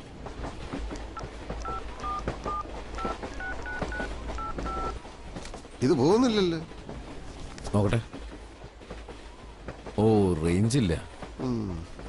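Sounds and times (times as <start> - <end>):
train carriage rumble: 0.0 - 12.0
phone keypad beeps: 1.6 - 5.0.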